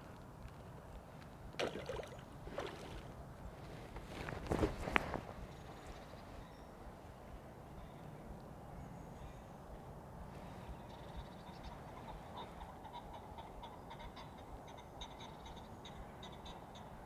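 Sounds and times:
fish thrashing in water: 1.6s - 3.1s.

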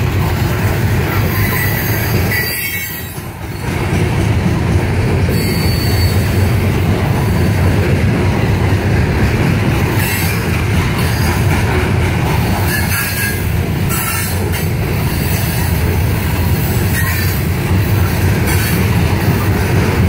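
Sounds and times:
train wheels rumbling on track: 0.0s - 20.0s
wheel squeals: 1.1s - 3.8s, 5.3s - 6.5s.

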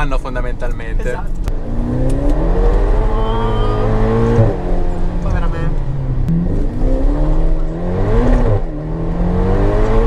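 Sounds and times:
car engine accelerating: 0.0s - 10.0s.

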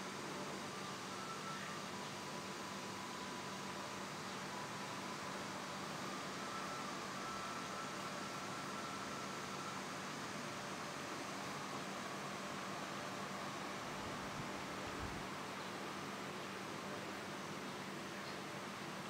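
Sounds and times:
faint thin whining tones: 0.0s - 19.0s.

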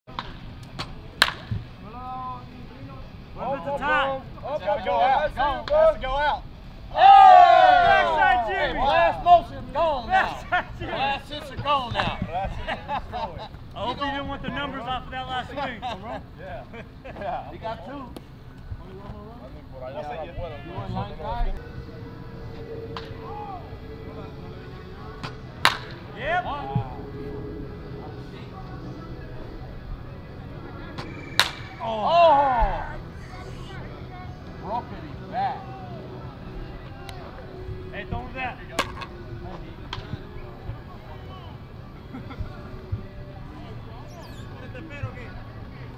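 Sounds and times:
bat hitting ball with crack: 0.1s - 1.6s, 25.6s - 26.0s, 31.4s - 31.8s.

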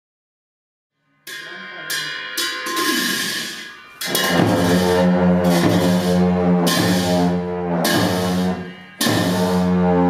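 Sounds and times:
cymbals crashing: 1.2s - 10.0s
long horns droning: 4.1s - 10.0s.

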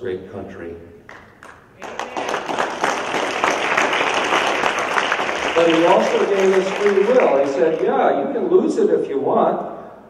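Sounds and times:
audience applauding: 1.1s - 8.2s.

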